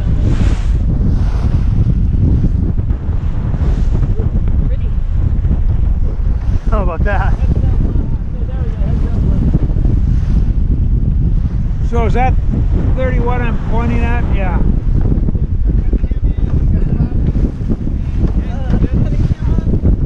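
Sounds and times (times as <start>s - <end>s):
water rushing along hull: 0.0s - 20.0s
wind buffeting microphone: 0.0s - 20.0s.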